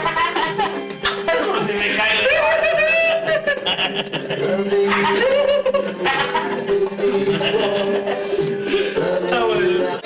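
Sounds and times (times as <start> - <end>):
group of people laughing: 0.0 - 1.0, 2.0 - 8.7
background music: 0.0 - 10.0.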